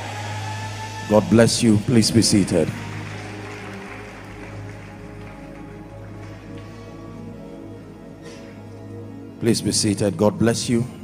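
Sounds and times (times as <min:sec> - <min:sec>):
soft sustained keyboard chords: 0:01.1 - 0:11.0.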